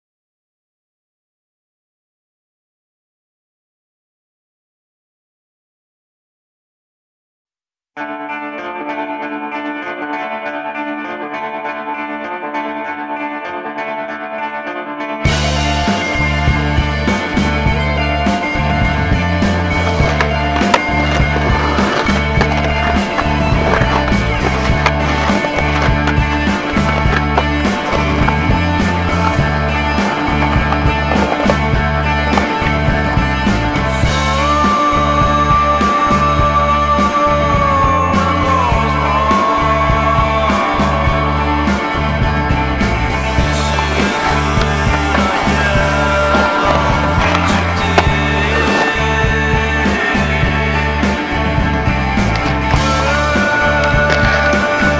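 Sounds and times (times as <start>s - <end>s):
skateboard wheels rolling on rock: 15.3s - 37.5s, 38.1s - 54.9s
music with steady beat: 15.3s - 54.9s.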